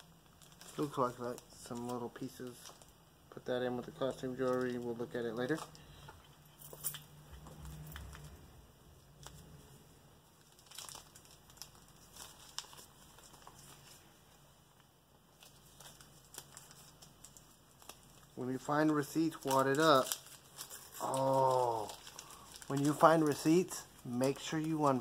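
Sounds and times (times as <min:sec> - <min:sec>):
paper crinkling: 0:00.0 - 0:03.0, 0:03.9 - 0:06.4, 0:09.0 - 0:25.0.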